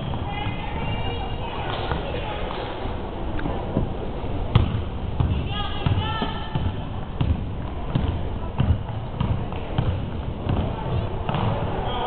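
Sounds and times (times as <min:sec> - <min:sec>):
basketball bouncing on wooden floor: 0:04.5 - 0:11.6.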